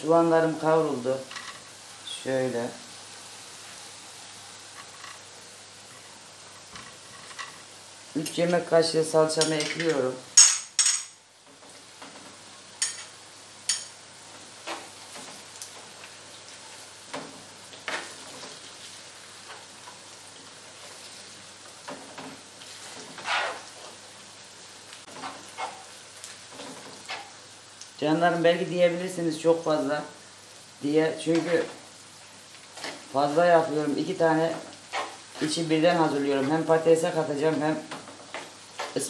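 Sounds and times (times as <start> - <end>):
onions sizzling in oil: 0.0 - 39.0
metal spoon scraping frying pan: 22.9 - 23.8, 25.1 - 25.9, 26.6 - 27.4, 34.9 - 35.5.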